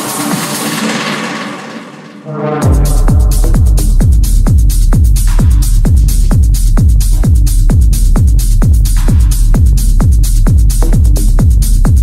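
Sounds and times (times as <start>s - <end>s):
techno music: 0.0s - 12.0s.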